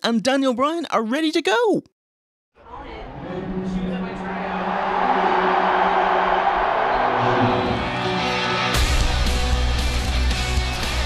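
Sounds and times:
building music intro: 2.6 - 11.0
crowd cheering: 2.6 - 11.0
heavy rock with drums and guitar: 7.9 - 11.0.

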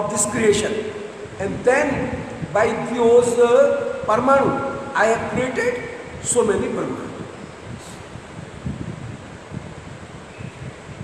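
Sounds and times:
background hiss: 0.0 - 11.0
air puffs on microphone: 7.6 - 9.8.

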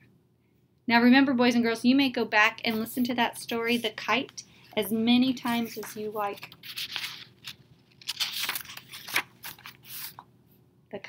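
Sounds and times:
book pages flipping: 4.6 - 10.3.

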